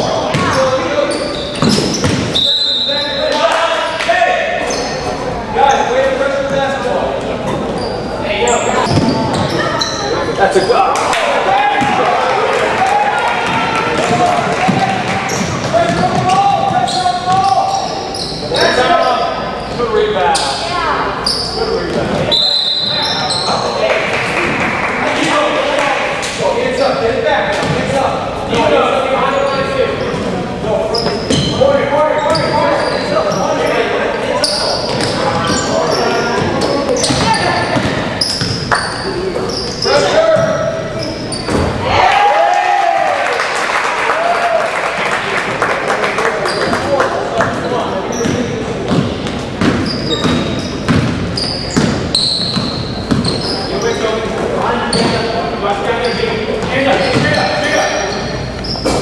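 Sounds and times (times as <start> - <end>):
voices echoing in hall: 0.0 - 59.0
basketball bouncing on court: 0.3 - 0.6, 1.6 - 2.4, 8.8 - 9.6, 13.4 - 17.5, 27.6 - 27.9, 36.4 - 38.9, 48.2 - 53.6, 56.6 - 57.6
high whistle: 2.3 - 3.2, 22.3 - 23.5.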